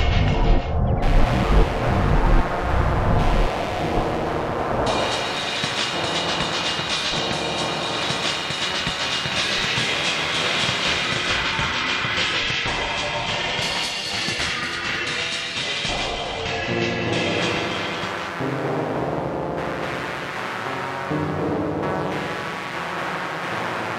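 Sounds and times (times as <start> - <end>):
electroacoustic computer music: 0.0 - 23.9.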